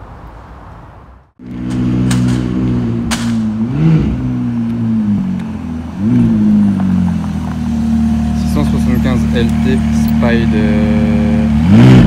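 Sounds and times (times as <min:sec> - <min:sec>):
car engine running low: 0:01.4 - 0:12.0.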